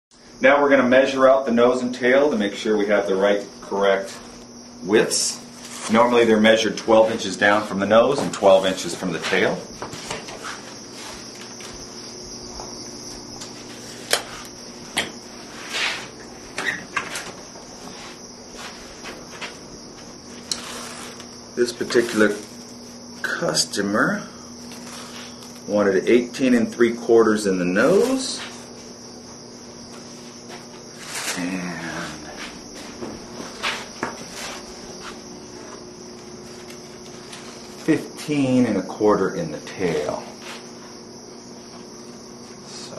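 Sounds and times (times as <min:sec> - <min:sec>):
steady high-pitched hiss: 0:00.2 - 0:42.9
high-pitched whine: 0:29.6 - 0:40.6.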